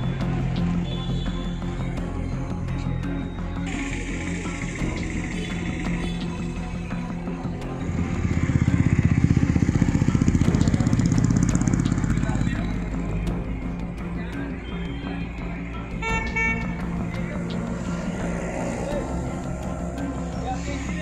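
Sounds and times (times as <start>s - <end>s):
music: 0.0s - 21.0s
small vehicle engine running: 3.7s - 13.0s.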